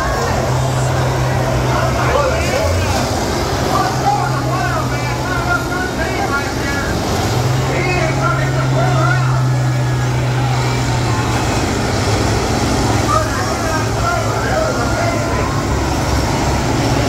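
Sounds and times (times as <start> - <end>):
crowd chatter and shouts: 0.0 - 17.0
diesel engines running hard: 0.0 - 17.0.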